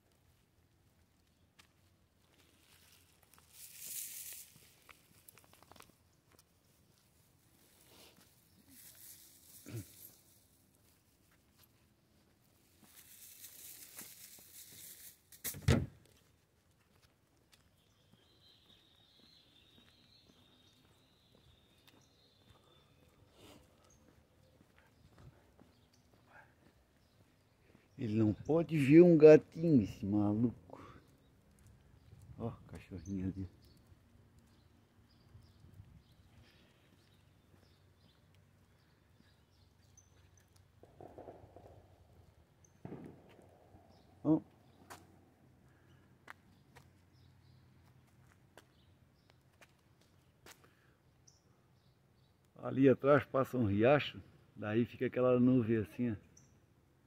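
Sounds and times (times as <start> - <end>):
footsteps and shuffling on paving: 0.0 - 52.5.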